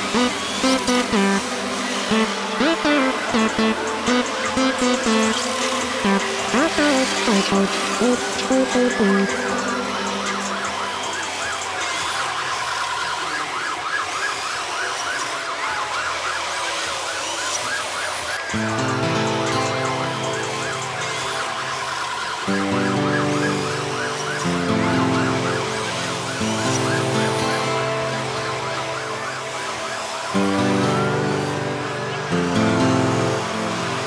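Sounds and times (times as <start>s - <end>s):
club music: 0.0s - 12.5s, 18.5s - 34.0s
electronic siren yelping: 0.0s - 34.0s.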